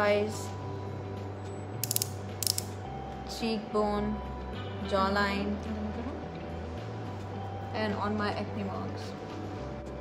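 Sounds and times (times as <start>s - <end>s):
ratcheting clicks of twist collar: 1.8s - 2.8s.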